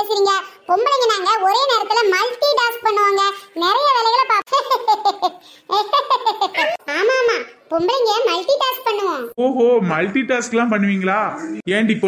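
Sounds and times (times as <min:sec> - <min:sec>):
sped-up cartoon voice laughing: 0:04.5 - 0:07.4.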